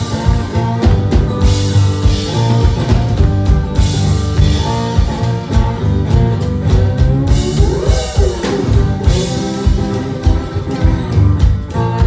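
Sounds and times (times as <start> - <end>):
amplified acoustic guitar: 0.0 - 12.0
drum kit beat: 0.0 - 12.0.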